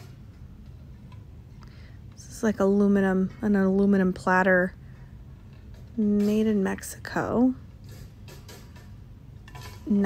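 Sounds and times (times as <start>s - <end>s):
store background hum: 0.0s - 10.0s.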